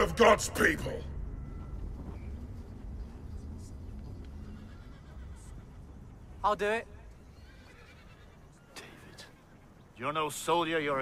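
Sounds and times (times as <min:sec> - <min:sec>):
low rumble: 0:00.0 - 0:04.6.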